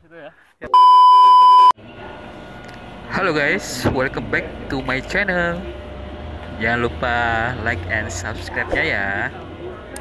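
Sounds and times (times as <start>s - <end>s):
high test-tone beep: 0.7s - 1.8s.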